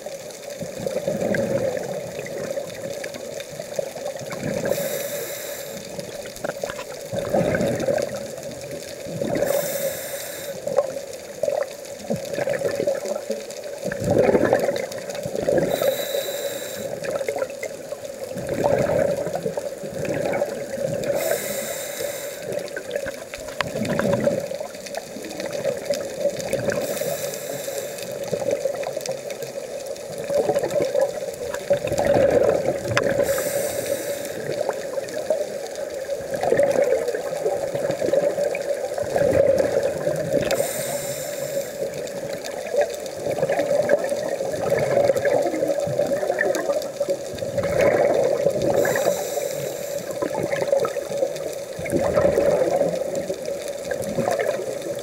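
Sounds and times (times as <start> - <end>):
exhaled air bubbling: 0.0 - 55.0
regulator hissing inhalation: 4.6 - 6.1, 9.4 - 10.8, 15.6 - 17.1, 21.1 - 22.9, 26.7 - 28.2, 33.2 - 34.8, 40.4 - 42.0, 48.7 - 50.3.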